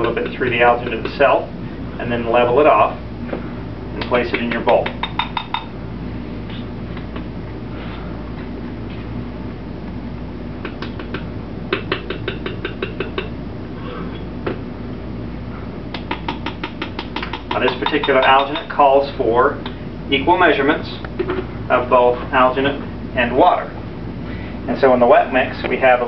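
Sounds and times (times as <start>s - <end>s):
steady low hum: 0.0s - 26.0s.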